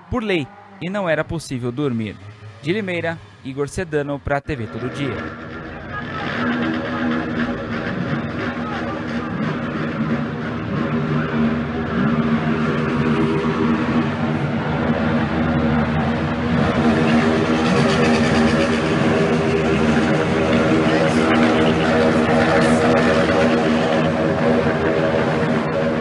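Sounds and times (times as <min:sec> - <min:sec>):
street din: 0:00.0 - 0:26.0
vehicle engines at high revs: 0:00.0 - 0:26.0.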